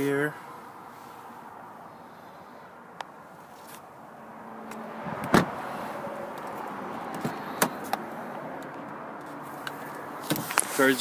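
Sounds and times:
car door thump: 5.2 - 5.6.

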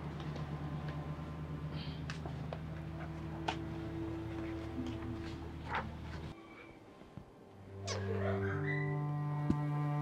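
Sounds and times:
low bowed strings: 0.0 - 6.8, 7.4 - 10.0.

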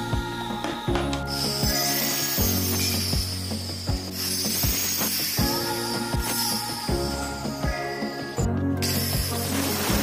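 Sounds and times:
background music with steady beat: 0.0 - 10.0
circular saw cutting wood: 0.7 - 6.9.

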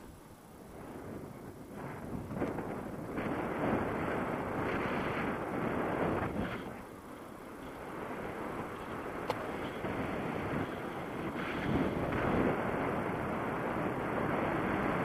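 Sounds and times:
wind roaring on microphone: 0.0 - 15.0.

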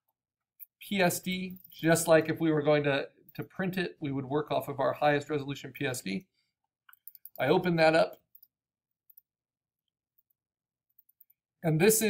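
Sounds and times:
computer mouse clicks: 6.9 - 7.5.

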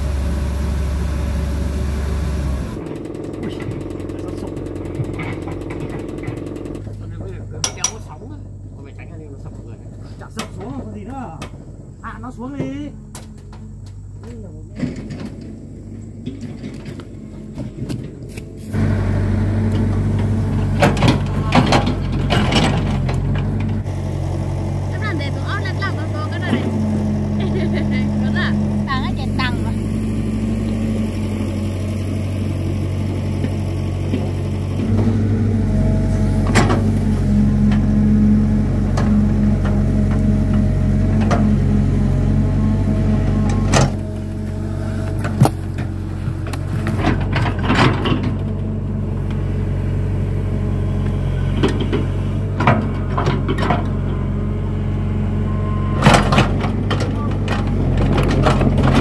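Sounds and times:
diesel excavator engine running: 0.0 - 59.0.

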